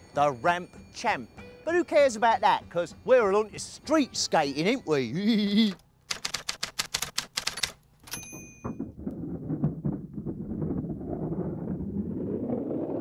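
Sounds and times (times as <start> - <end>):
typewriter keystrokes clicking: 6.1 - 8.3
typewriter bell ding: 7.5 - 8.8
skateboard wheels rolling on concrete: 8.2 - 13.0.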